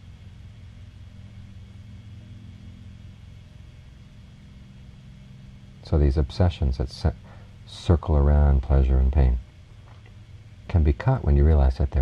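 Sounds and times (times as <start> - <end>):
faint hiss: 0.0 - 12.0
low steady hum: 0.0 - 12.0.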